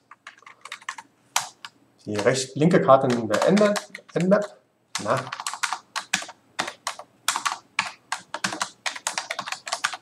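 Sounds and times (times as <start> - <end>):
typing on computer keyboard: 0.1 - 10.0.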